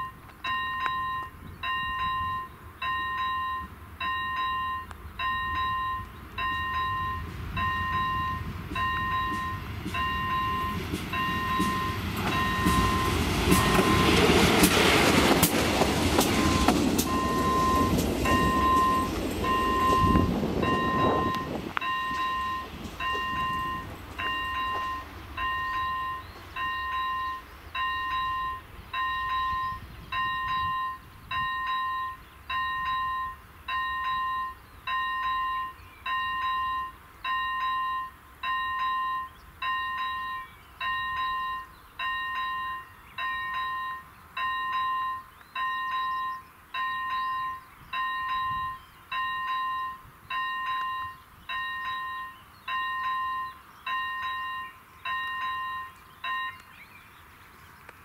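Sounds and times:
level crossing warning bell: 0.0 - 14.5, 16.2 - 56.9
train rumble: 0.0 - 56.8.

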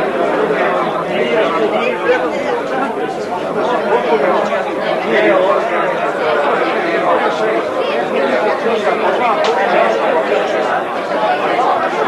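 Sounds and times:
overlapping conversation: 0.0 - 12.0.

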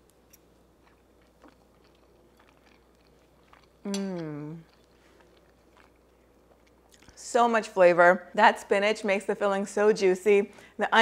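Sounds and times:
person chewing: 0.0 - 7.2.

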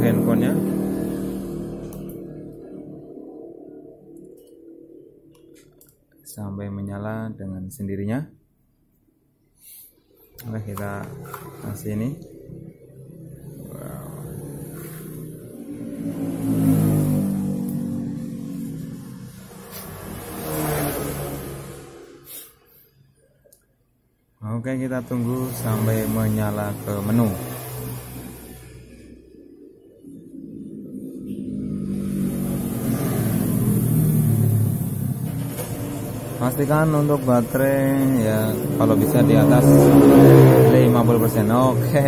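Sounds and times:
vehicle engine running: 0.0 - 4.2, 25.0 - 42.0.

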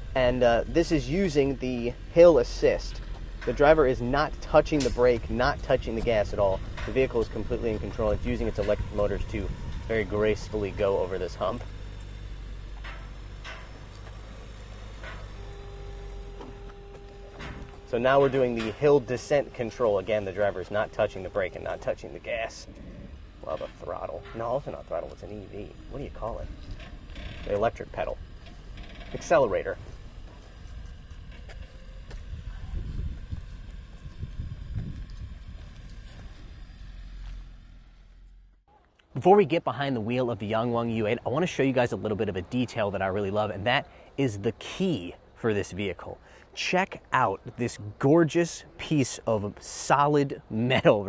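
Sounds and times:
electric motor hum: 0.0 - 38.6
low vehicle rumble: 0.0 - 51.0
steady whine: 0.0 - 51.0.

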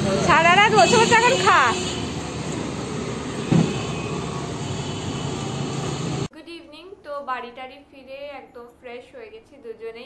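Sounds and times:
road traffic passing: 0.0 - 6.3.

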